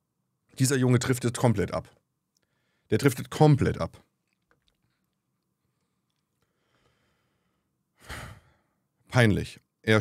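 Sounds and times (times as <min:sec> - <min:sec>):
man sighing: 0:08.0 - 0:08.6.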